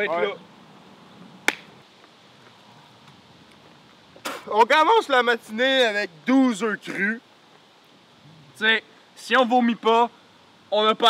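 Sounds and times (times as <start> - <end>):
faint background hiss: 0.0 - 11.0.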